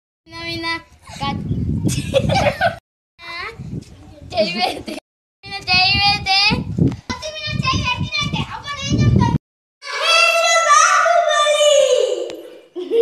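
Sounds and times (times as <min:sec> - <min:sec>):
child speaking: 0:00.3 - 0:01.6, 0:03.2 - 0:04.9, 0:05.5 - 0:12.4.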